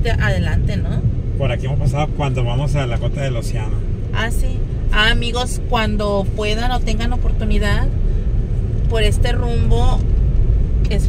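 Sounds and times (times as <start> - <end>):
car driving on rough street: 0.0 - 11.0.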